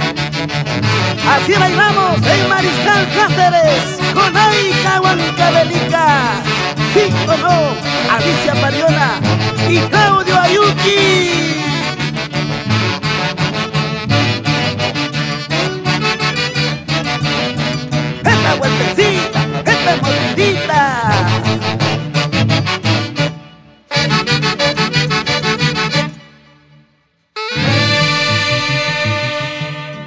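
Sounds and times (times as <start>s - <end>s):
folk band instrumental music: 0.0s - 30.0s.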